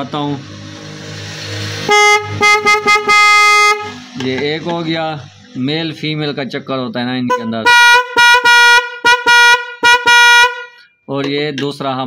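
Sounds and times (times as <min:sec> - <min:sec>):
electric horn blasts: 0:01.8 - 0:04.1, 0:07.3 - 0:10.8.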